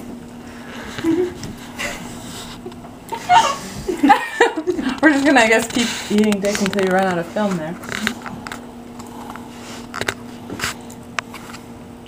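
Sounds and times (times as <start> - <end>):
steady low hum: 0.0 - 12.0
soft laughter: 0.8 - 5.0.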